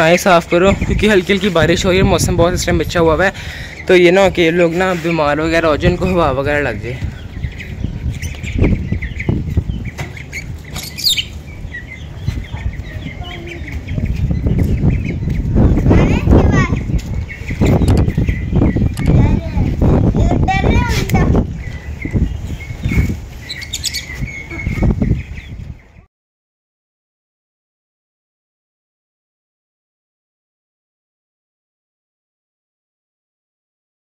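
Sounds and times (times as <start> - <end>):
ducklings and chicks cheeping: 0.0 - 26.1
lovebirds chirping: 0.0 - 26.1
low rumbling thumps: 11.4 - 23.4.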